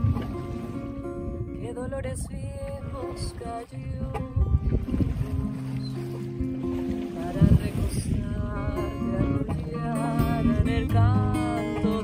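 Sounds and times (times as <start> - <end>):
acoustic guitar chords: 0.0 - 12.0
wind rumble on microphone: 0.0 - 12.0
person singing: 7.2 - 12.0.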